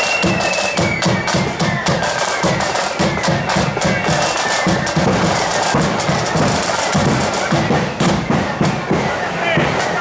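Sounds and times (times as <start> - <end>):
snare drum strokes: 0.0 - 10.0.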